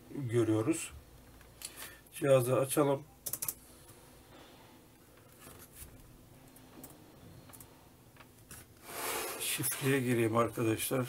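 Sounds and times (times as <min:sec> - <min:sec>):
laptop keys clicking: 0:03.2 - 0:03.6.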